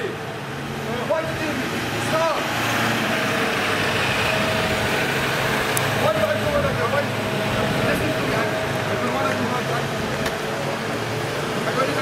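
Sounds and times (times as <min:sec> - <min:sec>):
distant voices: 0:00.0 - 0:12.0
motor hum: 0:00.3 - 0:12.0.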